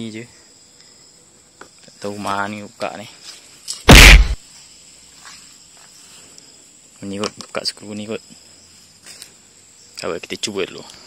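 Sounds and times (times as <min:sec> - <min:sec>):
crickets chirring: 0:00.0 - 0:11.0
loud burst of noise: 0:03.9 - 0:04.4.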